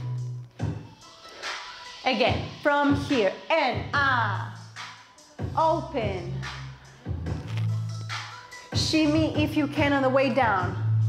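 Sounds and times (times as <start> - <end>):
trap dance music with deep bass: 0.0 - 11.0.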